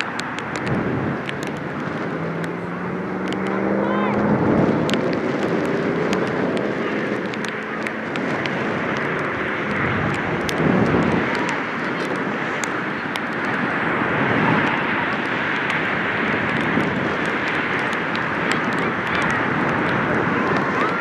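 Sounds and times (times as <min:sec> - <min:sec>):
sharp ticks: 0:00.0 - 0:03.8, 0:04.8 - 0:13.7
faint voices: 0:00.0 - 0:21.0
steady rushing noise: 0:00.0 - 0:21.0.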